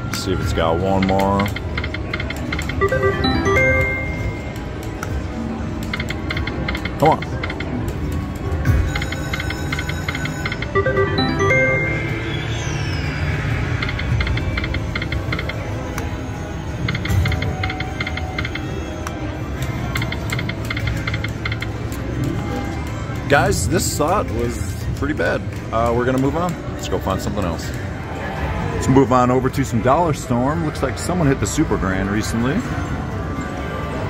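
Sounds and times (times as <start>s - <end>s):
slot machine reels ticking: 0.1s - 27.8s.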